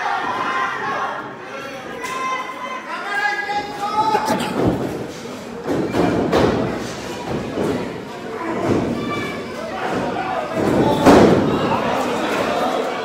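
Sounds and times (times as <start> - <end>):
crowd shouting: 2.4 - 5.0.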